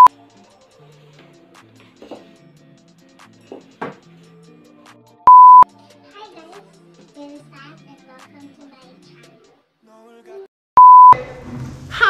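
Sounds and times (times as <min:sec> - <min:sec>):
soft background music: 0:00.0 - 0:10.4
loud test tone beep: 0:05.3 - 0:05.6, 0:10.8 - 0:11.2.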